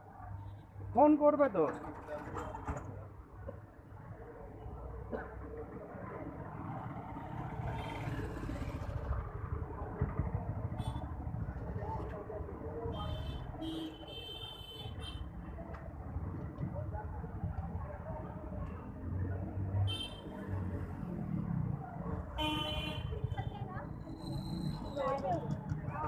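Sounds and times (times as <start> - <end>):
motor traffic: 0.0 - 26.0.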